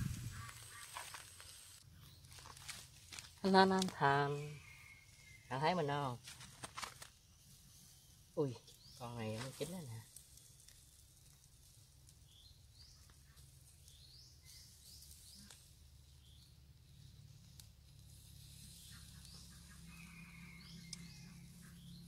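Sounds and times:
faint high bird chirps: 4.2s - 6.2s, 12.2s - 17.2s, 18.5s - 22.0s.

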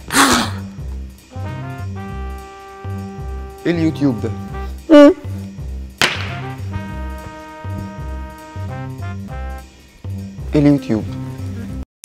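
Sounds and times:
background music with bass beat: 0.0s - 11.8s.

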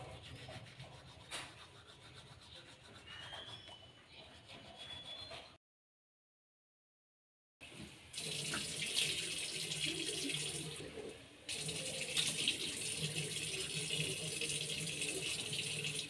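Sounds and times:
tap water running into sink: 7.7s - 16.0s.

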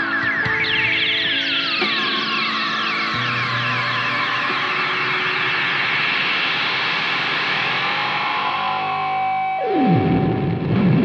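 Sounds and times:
electric guitar hissing wash: 2.6s - 9.5s.

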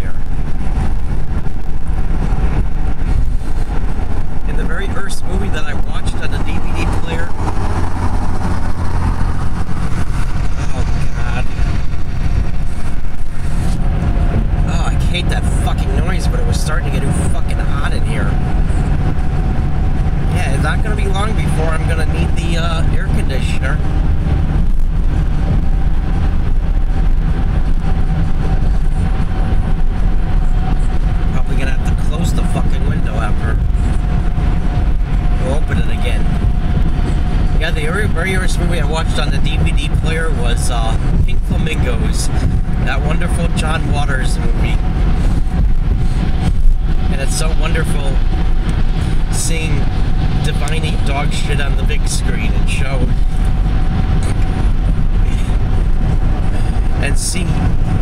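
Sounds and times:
tyre and engine rumble: 0.0s - 58.0s.

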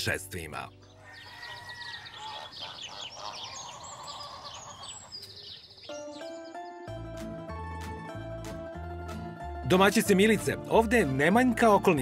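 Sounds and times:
birds chirping and twittering: 0.0s - 7.2s.

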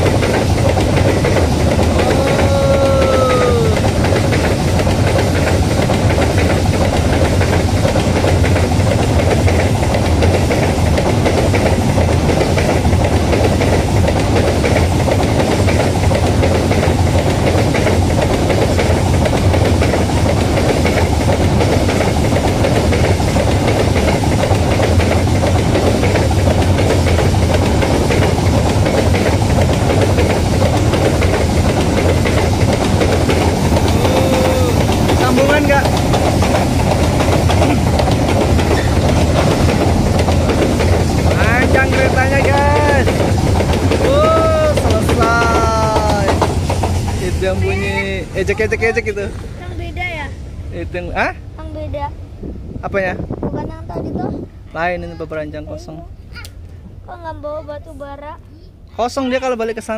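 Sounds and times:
train wagons rumbling on rails: 0.0s - 59.9s.

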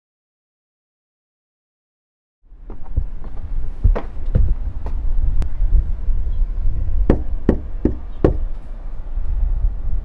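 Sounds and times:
low rumble: 2.5s - 10.0s
knuckles knocking on door: 7.1s - 8.5s.

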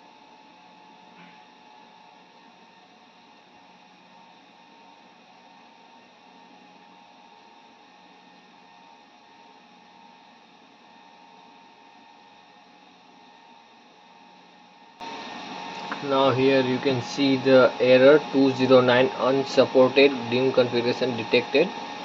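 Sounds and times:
server fan whirring: 15.0s - 22.0s.

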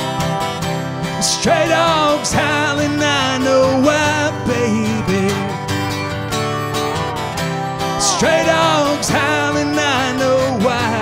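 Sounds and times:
acoustic guitar: 0.0s - 11.0s
pedal steel guitar: 0.0s - 11.0s
man singing: 1.1s - 6.0s, 7.8s - 11.0s.

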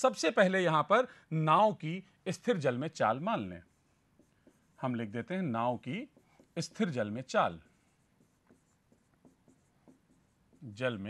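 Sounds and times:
pen writing on screen: 2.6s - 11.0s.

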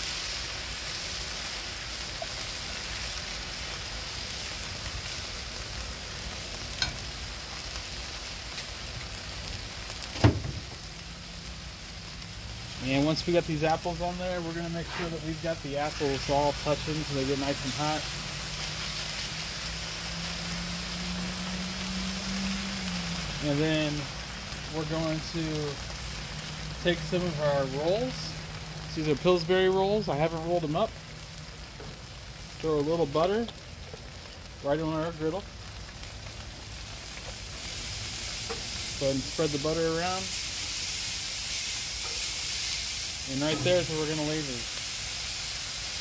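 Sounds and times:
apple slices sizzling on griddle: 0.0s - 46.0s.

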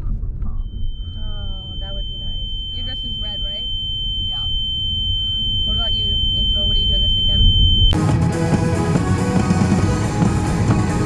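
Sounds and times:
car rumble from inside cabin: 0.0s - 8.0s
high-pitched whine: 0.0s - 8.0s
music: 8.0s - 11.0s.

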